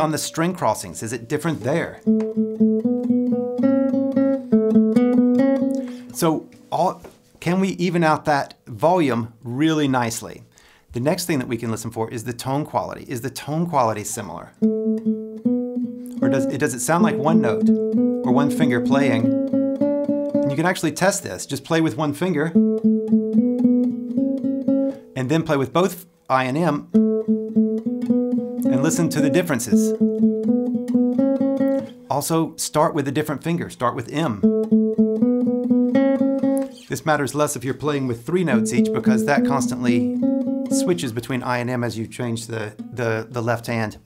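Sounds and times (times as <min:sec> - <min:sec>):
classical guitar tremolo: 0:01.8 - 0:06.6, 0:14.6 - 0:20.8, 0:22.5 - 0:25.2, 0:26.8 - 0:32.1, 0:34.4 - 0:36.9, 0:38.0 - 0:41.4.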